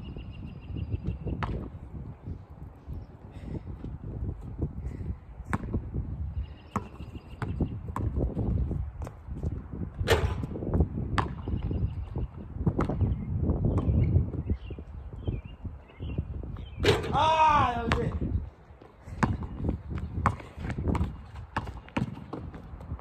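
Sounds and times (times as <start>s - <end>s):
wind rumble on microphone: 0.0s - 23.0s
basketball bouncing on asphalt: 1.0s - 2.1s, 3.4s - 14.8s, 16.4s - 23.0s.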